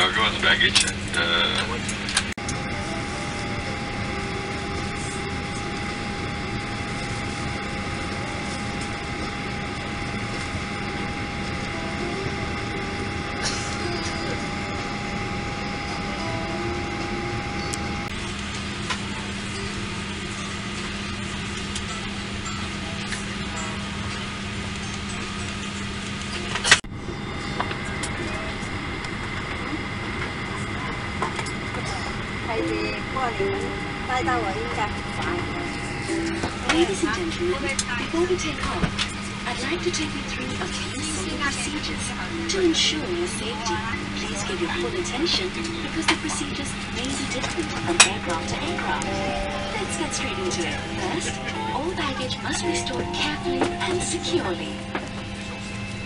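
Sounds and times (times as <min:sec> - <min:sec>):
airliner cabin hum: 0:00.0 - 0:56.0
faint whine: 0:00.0 - 0:56.0.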